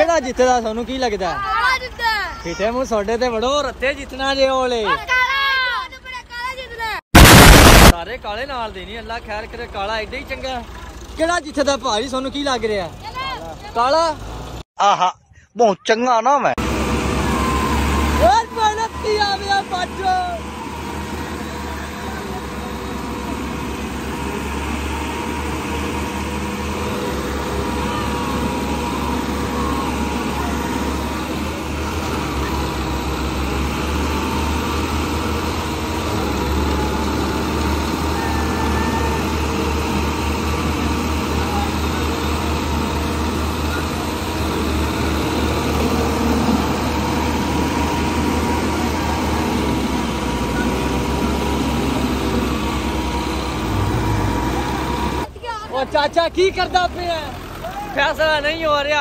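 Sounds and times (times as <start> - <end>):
tractor engines at full throttle: 0.0 - 6.4, 7.2 - 14.7, 16.6 - 59.0.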